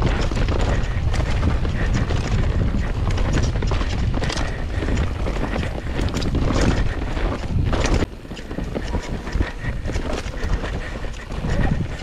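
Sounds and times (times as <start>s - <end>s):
bike rattling clicks and knocks: 0.0s - 12.0s
bike tyres rumbling on dirt: 0.0s - 12.0s.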